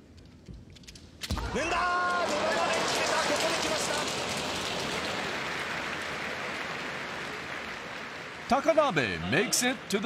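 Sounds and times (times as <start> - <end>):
crowd applauding: 1.5 - 10.0.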